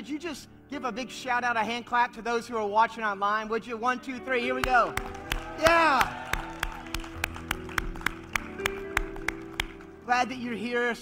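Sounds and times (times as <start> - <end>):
soft background music: 0.0 - 11.0
hands clapping rhythmically: 4.6 - 10.0.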